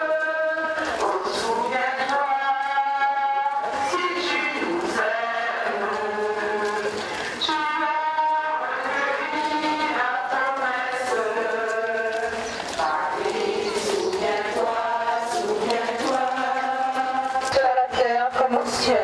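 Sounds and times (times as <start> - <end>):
voices singing a slow hymn: 0.0 - 19.0.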